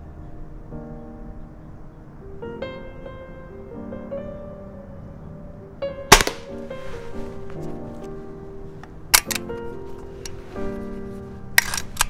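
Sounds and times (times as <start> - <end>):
background music: 0.0 - 12.0
air pistol shot crack: 6.1 - 6.6.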